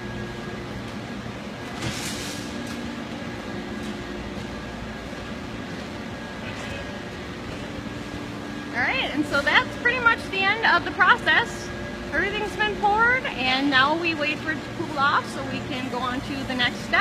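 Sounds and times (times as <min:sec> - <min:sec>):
low machine hum: 0:00.0 - 0:17.0.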